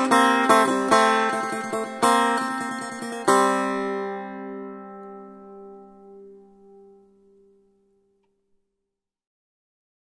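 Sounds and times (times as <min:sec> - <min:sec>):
plucked lute note: 0:00.0 - 0:07.8.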